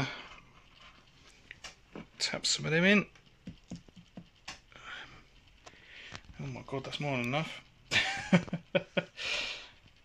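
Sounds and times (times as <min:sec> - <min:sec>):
light taps on glass terrarium: 0:03.4 - 0:04.6.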